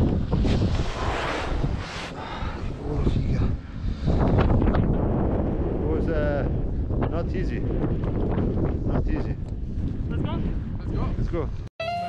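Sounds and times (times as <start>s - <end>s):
wind buffeting microphone: 0.0s - 11.7s.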